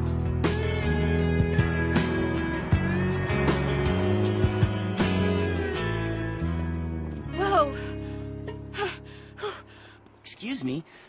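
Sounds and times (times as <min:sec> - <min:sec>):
background music chord: 0:00.0 - 0:10.8
girl gasping breathily: 0:07.6 - 0:10.0.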